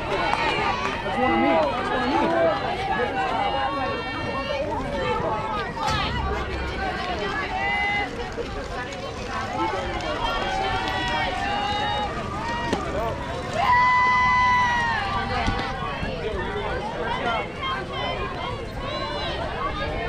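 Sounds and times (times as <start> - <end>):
voices calling out and cheering: 0.0 - 20.0.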